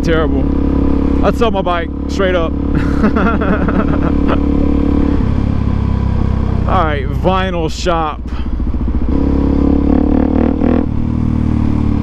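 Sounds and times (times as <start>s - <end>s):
motorcycle engine under throttle: 0.0s - 12.0s.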